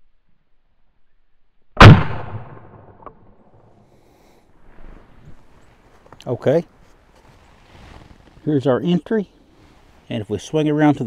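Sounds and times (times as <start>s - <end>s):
rifle shot with echo: 1.8s - 3.7s.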